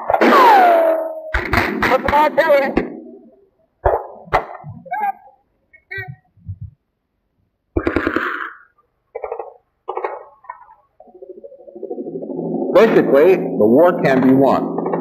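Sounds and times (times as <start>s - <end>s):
sharp cracks: 1.3s - 3.0s, 7.7s - 10.3s.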